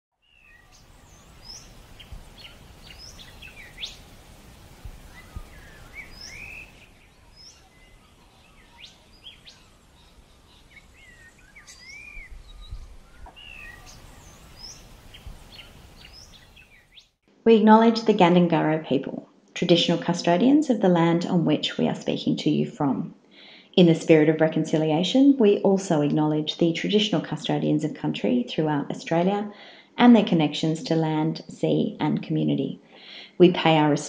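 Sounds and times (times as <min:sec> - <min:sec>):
birds chirping and singing: 0:00.2 - 0:17.1.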